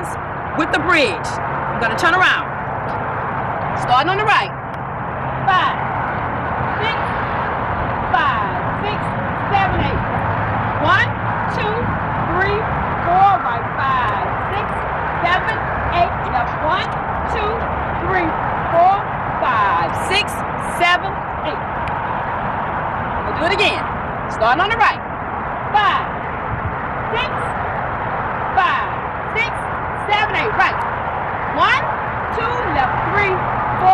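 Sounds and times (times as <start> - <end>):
steady outdoor noise: 0.0 - 33.9.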